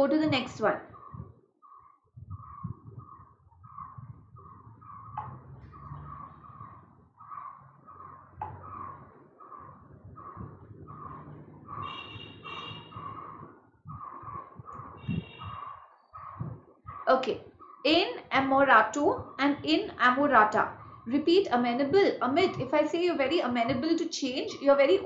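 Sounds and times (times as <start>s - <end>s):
bird chirping: 0.2s - 18.0s, 19.1s - 23.8s.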